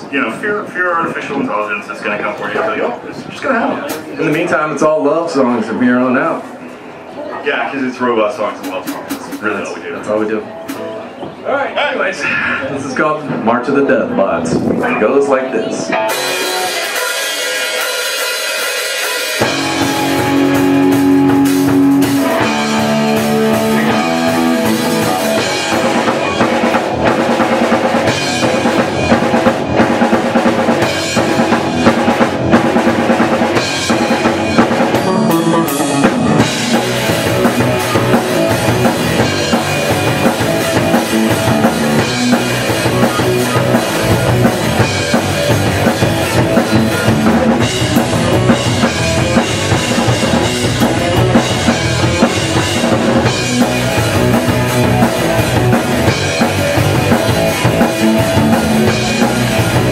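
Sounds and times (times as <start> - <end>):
drum kit: 8.5 - 9.8, 10.6 - 11.4, 15.9 - 59.9
rock band playing: 8.5 - 11.4, 13.2 - 59.9
electric guitar riff: 14.0 - 59.9.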